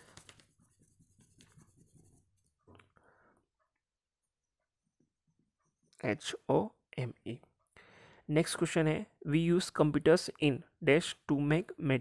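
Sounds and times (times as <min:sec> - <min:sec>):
eraser rubbing on paper: 0:00.0 - 0:02.4.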